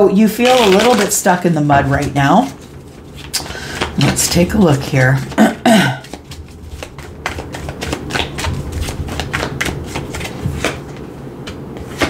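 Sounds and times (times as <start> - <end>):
cards being shuffled: 0.4 - 5.4, 6.0 - 12.0.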